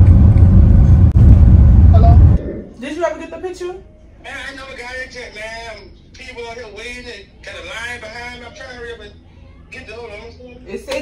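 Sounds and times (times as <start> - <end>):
car engine and road noise: 0.0 - 2.4.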